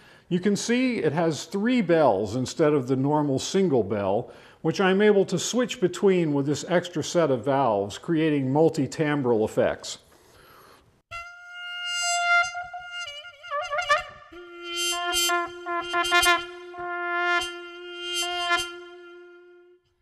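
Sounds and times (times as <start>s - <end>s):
electro-acoustic trumpet notes: 11.1s - 20.0s.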